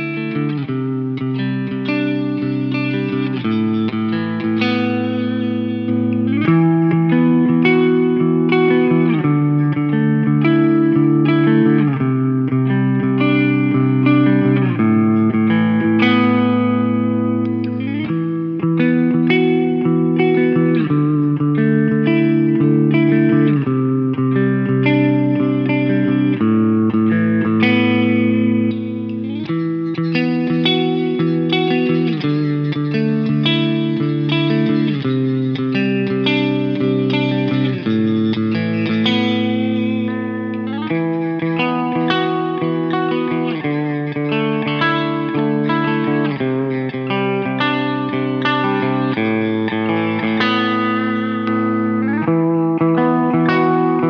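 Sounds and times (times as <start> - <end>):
clean electric guitar chords: 0.0 - 54.0.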